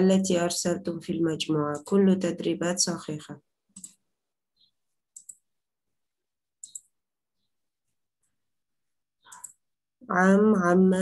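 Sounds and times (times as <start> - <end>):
person speaking: 0.0 - 3.4, 9.3 - 11.0
computer mouse clicks: 1.7 - 2.0, 3.7 - 4.0, 4.6 - 5.5, 6.6 - 7.0, 9.2 - 9.7.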